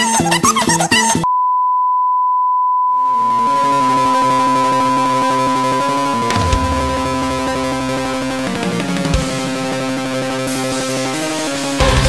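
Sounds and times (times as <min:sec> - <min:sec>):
music: 0:00.0 - 0:01.2, 0:03.4 - 0:12.0
sine test tone: 0:01.3 - 0:10.7.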